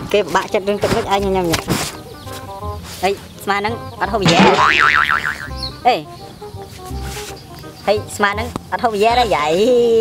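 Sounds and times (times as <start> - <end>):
background music: 0.0 - 10.0
cartoon boing sound effect: 4.2 - 5.6.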